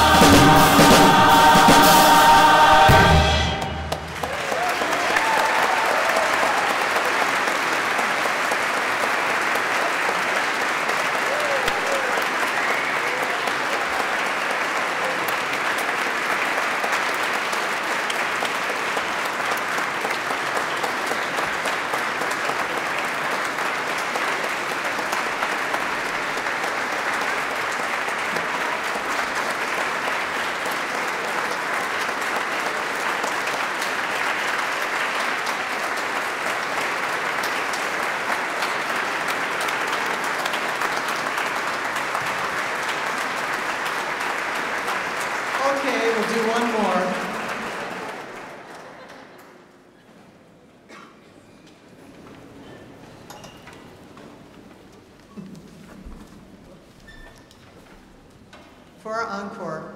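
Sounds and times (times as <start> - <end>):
large audience applauding: 0.0 - 49.9.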